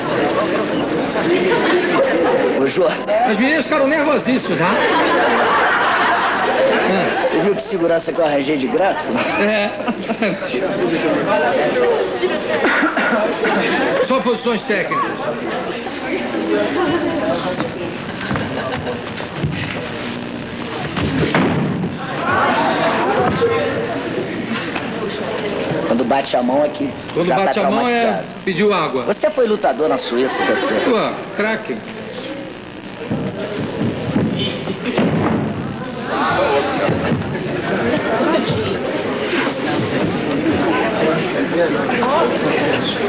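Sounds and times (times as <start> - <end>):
murmur of voices: 0.0 - 43.0
background voices: 31.2 - 43.0
bodies thudding on floor: 33.0 - 37.5.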